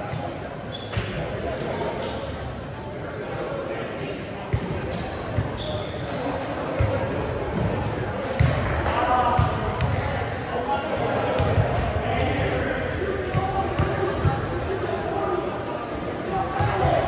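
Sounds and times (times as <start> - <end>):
chatter of voices: 0.0 - 17.0.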